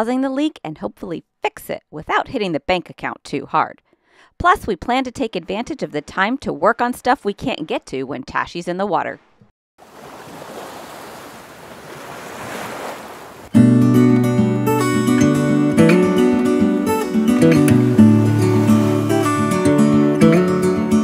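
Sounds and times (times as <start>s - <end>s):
strummed acoustic guitar music: 13.5s - 21.0s.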